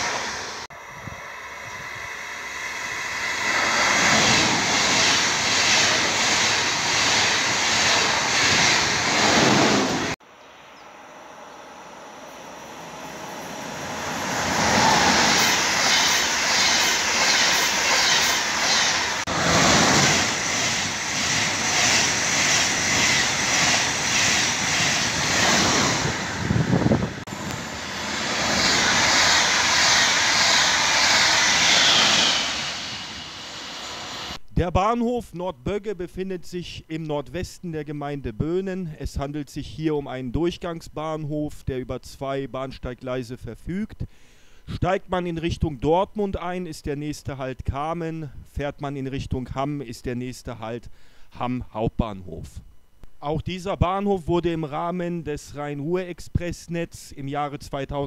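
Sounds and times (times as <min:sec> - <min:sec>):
trains passing at speed: 0:00.0 - 0:10.2, 0:11.0 - 0:34.4.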